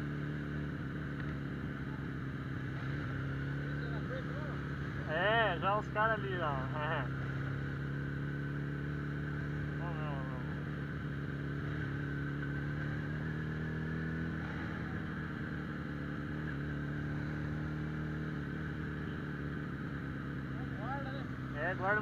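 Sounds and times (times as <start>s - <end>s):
motorcycle engine cruising: 0.0s - 22.0s.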